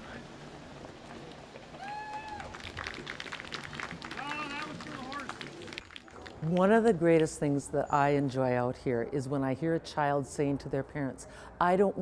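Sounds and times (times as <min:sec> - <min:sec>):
hooves and chains clicking: 0:02.6 - 0:08.4.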